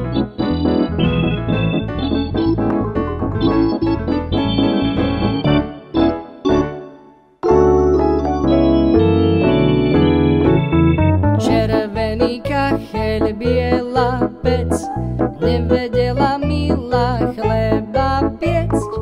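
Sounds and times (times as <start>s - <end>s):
bass line: 0.0s - 6.7s, 7.4s - 19.0s
electronic keyboard melody: 0.0s - 19.0s.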